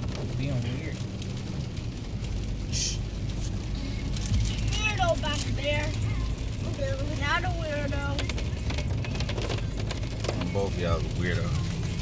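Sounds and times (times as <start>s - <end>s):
car cabin road hum: 0.0s - 12.0s
brief hiss: 2.7s - 3.0s.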